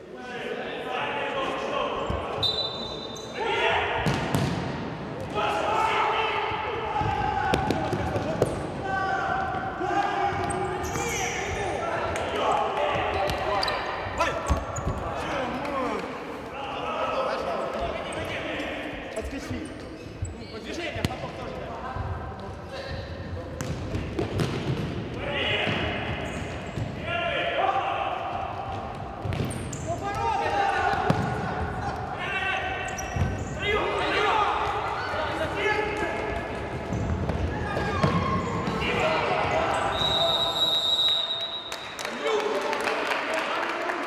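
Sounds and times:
players shouting in echoing hall: 0.0s - 44.0s
ball kicked and bouncing: 4.0s - 4.7s, 23.6s - 24.9s, 28.7s - 30.2s.

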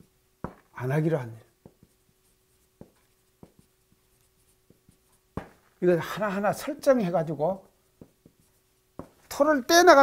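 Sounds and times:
faint steady hum: 0.0s - 10.0s
marker on whiteboard: 0.0s - 10.0s.

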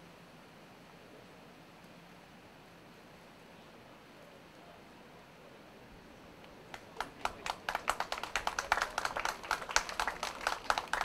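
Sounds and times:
audience clapping: 6.7s - 11.0s.

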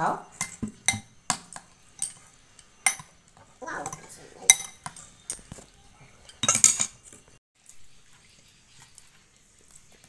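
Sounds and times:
spoon clinking against glass bowl: 0.3s - 7.1s.

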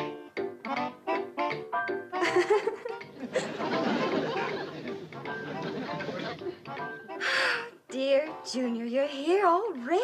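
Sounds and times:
light sitcom music: 0.0s - 10.0s
woman giggling: 2.2s - 4.6s
studio audience laughter: 2.2s - 6.6s
woman speaking: 7.9s - 10.0s.

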